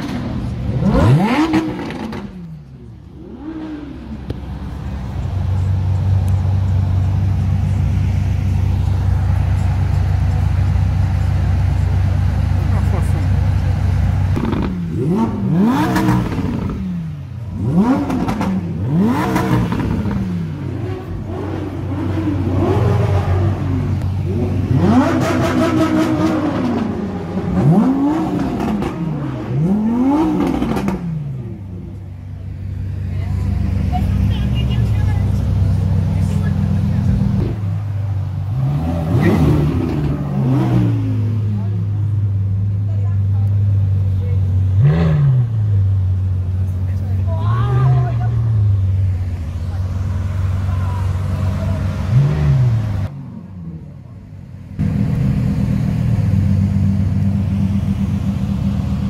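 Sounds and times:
car engine idling: 0.0s - 59.0s
car engine revving: 0.0s - 59.0s.

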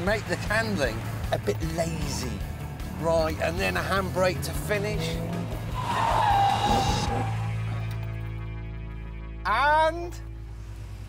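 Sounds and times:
background music: 0.0s - 11.0s
tyres squealing and skidding: 4.3s - 7.9s.

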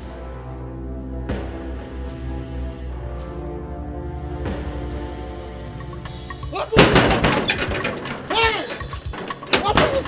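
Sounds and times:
banging on a metal gate: 6.6s - 10.0s.

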